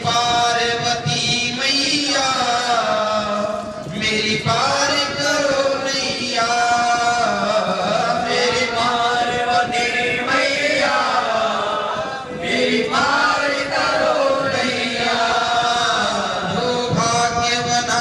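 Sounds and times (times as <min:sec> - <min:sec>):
male voices chanting: 0:00.0 - 0:18.0.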